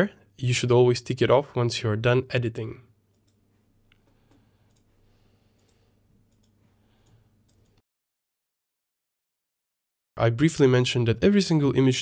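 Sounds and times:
computer mouse clicks: 0:03.1 - 0:05.0, 0:05.6 - 0:07.8.

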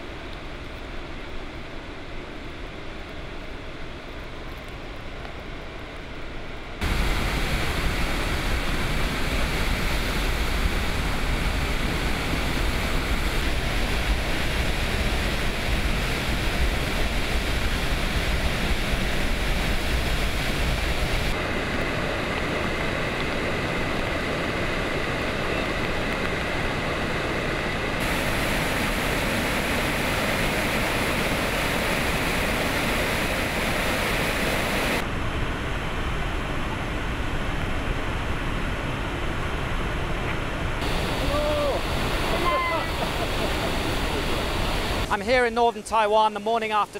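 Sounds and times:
floodwater rushing and crashing: 0:06.8 - 0:46.9.

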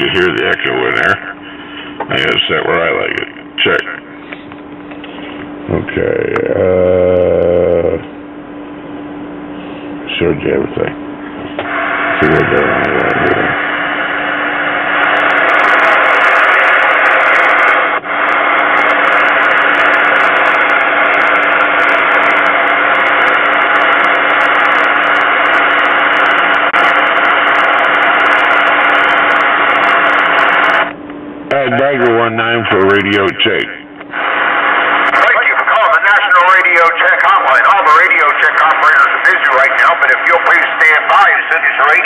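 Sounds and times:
recorded voice over radio: 0:00.0 - 0:01.4, 0:02.0 - 0:04.1, 0:05.7 - 0:08.0, 0:10.1 - 0:11.0, 0:12.2 - 0:13.6, 0:31.5 - 0:42.0
radio static: 0:00.0 - 0:04.4, 0:05.0 - 0:08.0, 0:10.1 - 0:42.0
low hum: 0:00.0 - 0:35.7.

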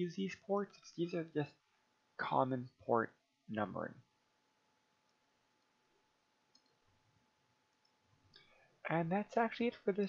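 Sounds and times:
faint ticks: 0:06.5 - 0:06.8.

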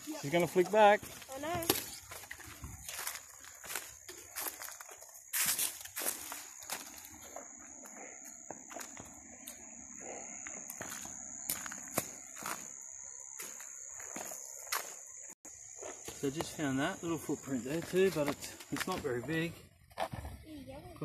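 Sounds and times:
footsteps crunching on leaves: 0:00.0 - 0:09.6, 0:10.7 - 0:19.2
insect trill: 0:00.0 - 0:21.0.

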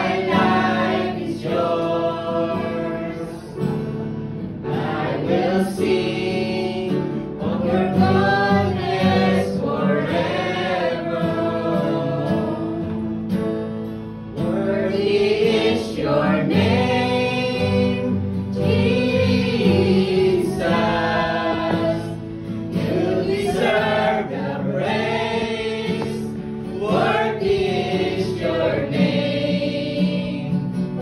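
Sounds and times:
group singing gospel song: 0:00.0 - 0:13.4, 0:14.3 - 0:31.0
acoustic guitar: 0:00.0 - 0:31.0
keyboard: 0:00.0 - 0:31.0.

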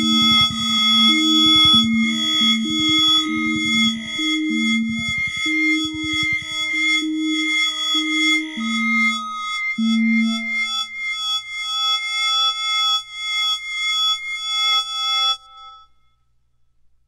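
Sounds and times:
pulsing synthesized tones: 0:00.0 - 0:10.7
low struck tone: 0:00.0 - 0:10.8.

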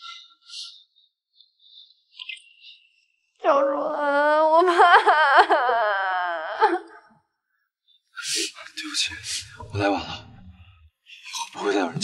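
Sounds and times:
woman crying and sobbing: 0:03.4 - 0:07.1.

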